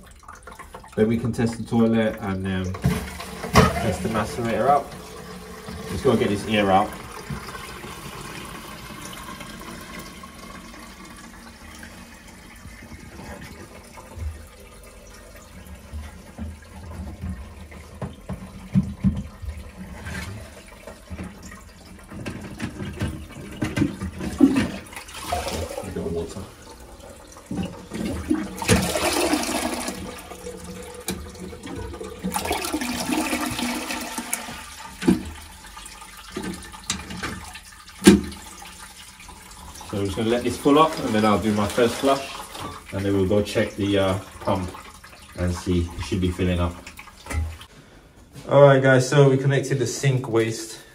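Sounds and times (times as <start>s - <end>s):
toilet cistern filling: 0.0s - 47.7s
water spluttering spurts: 0.0s - 47.7s.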